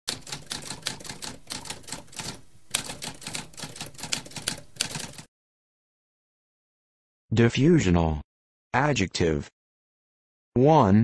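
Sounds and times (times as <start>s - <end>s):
typewriter typing: 0.1s - 5.3s.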